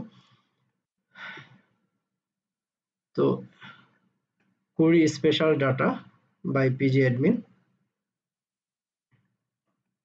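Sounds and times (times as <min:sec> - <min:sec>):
breath sigh: 0:01.2 - 0:01.7.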